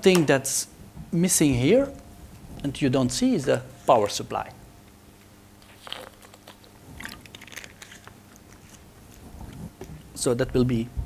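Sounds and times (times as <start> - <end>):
handling clicks and crinkling: 5.6 - 10.1.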